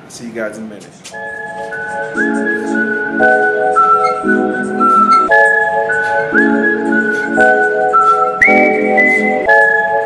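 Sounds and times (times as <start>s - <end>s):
whistled melody: 1.2s - 10.0s.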